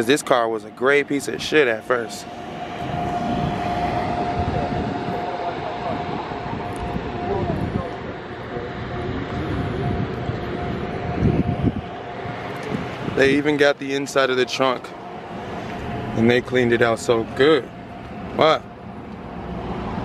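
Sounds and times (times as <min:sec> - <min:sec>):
engine whine: 0:00.0 - 0:20.0.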